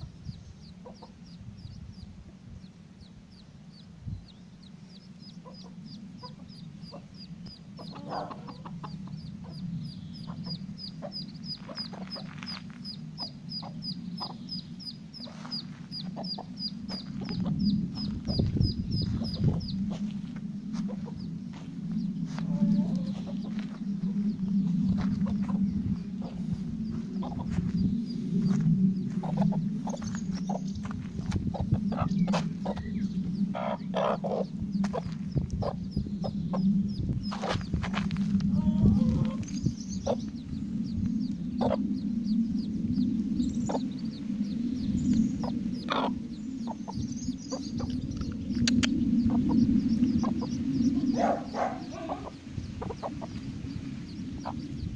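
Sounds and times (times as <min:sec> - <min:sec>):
duckling peeping: 0:00.0 - 0:40.6, 0:41.2 - 0:42.4, 0:43.4 - 0:54.9
hens clucking low: 0:05.3 - 0:14.4, 0:15.0 - 0:36.7, 0:37.3 - 0:40.4, 0:41.6 - 0:41.9, 0:45.4 - 0:54.9.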